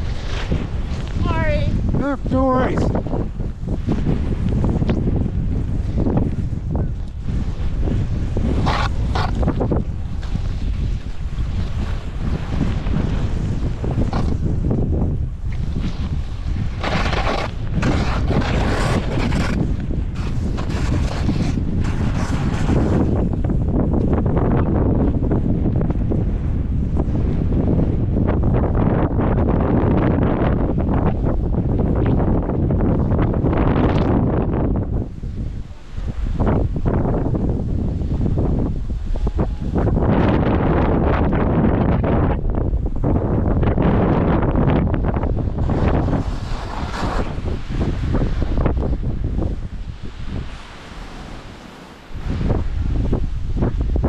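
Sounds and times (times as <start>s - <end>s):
snowboard scraping over snow: 0.0s - 54.0s
wind buffeting microphone: 0.0s - 54.0s.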